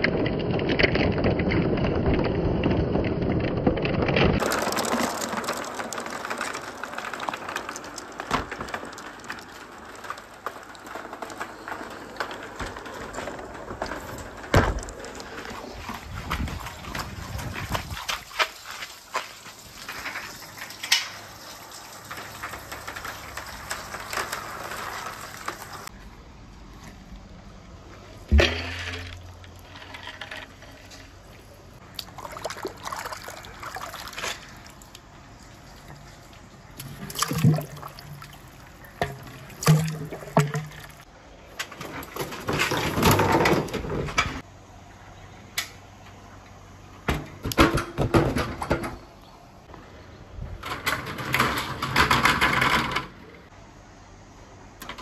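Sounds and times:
marbles rolling on wooden track: 0:00.0 - 0:25.9, 0:28.3 - 0:41.1.

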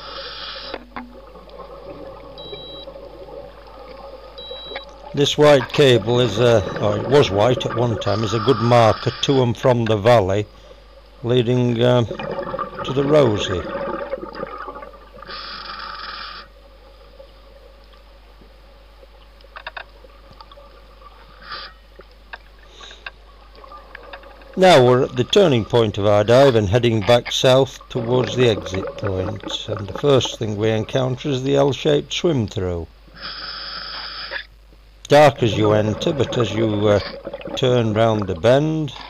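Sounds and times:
regulator breathing hiss: 0:00.0 - 0:00.8, 0:08.2 - 0:09.4, 0:15.2 - 0:16.6, 0:21.2 - 0:21.9, 0:33.1 - 0:34.5.

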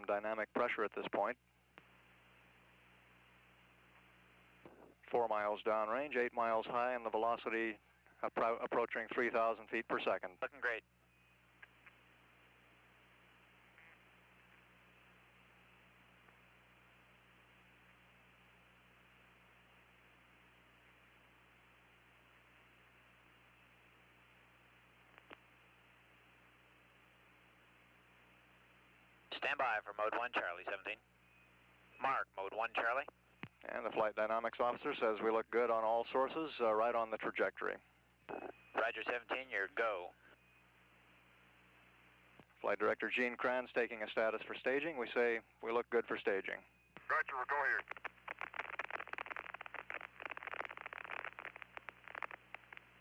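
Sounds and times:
faint hiss and hum: 0:00.0 - 0:53.0
radio static crackling: 0:00.0 - 0:53.0.

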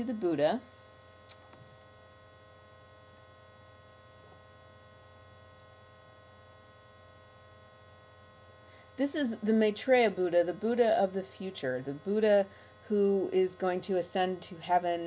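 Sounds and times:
faint electrical hum: 0:00.0 - 0:15.0
small click: 0:01.2 - 0:01.6.

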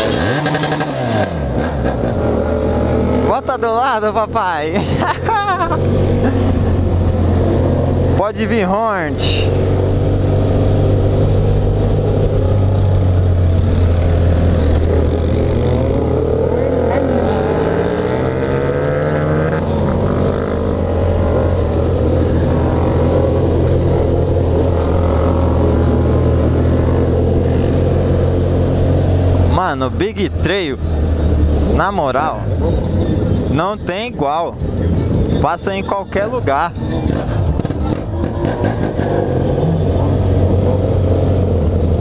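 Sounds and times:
motorcycle engine revving: 0:00.0 - 0:42.0.

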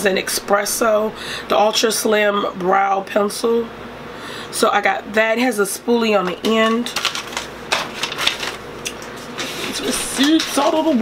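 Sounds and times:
small items rummaged through: 0:06.6 - 0:11.0.

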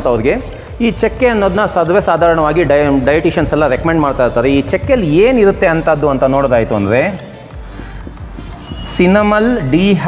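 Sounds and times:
marker writing on whiteboard: 0:07.6 - 0:09.2.

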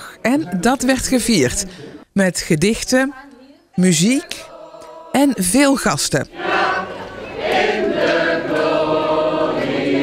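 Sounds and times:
group singing long held notes: 0:04.3 - 0:10.0.

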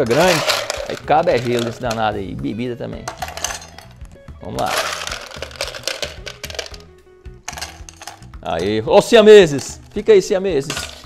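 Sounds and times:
ice cubes clinking in a glass: 0:00.0 - 0:02.0, 0:04.6 - 0:06.8, 0:07.5 - 0:08.3
background music: 0:00.0 - 0:11.0.

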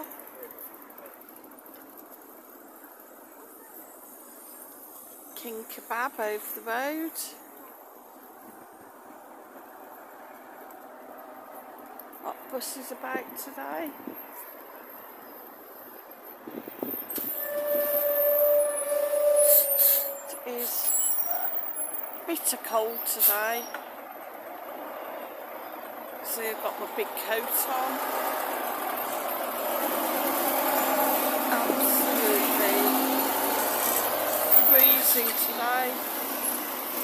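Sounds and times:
faint voices of passers-by: 0:00.0 - 0:37.0
street background noise: 0:00.0 - 0:37.0.

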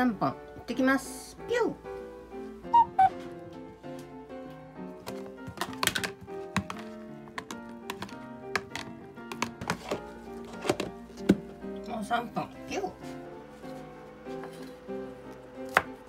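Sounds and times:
background music: 0:00.0 - 0:16.0
container lid handled: 0:05.0 - 0:11.5
metal spoon knocking plastic container: 0:05.5 - 0:10.0.

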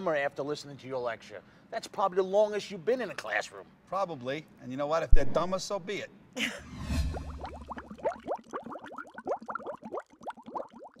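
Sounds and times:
water bubbling: 0:07.1 - 0:11.0.

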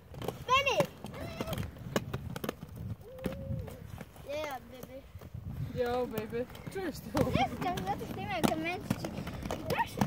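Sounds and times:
inline skate wheels rolling: 0:00.0 - 0:10.0.

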